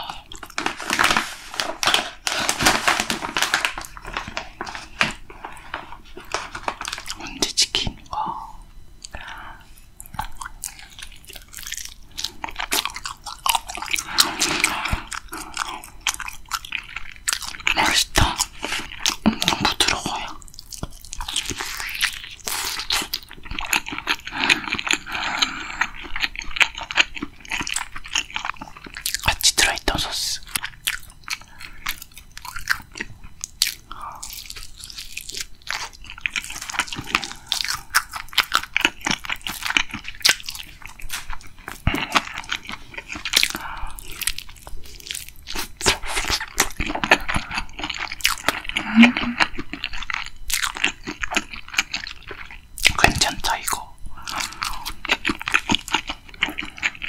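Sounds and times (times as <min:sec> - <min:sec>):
wet chewing: 0:10.0 - 0:29.8, 0:30.4 - 0:57.0
crisp crunches of fried chicken: 0:30.4 - 0:48.7.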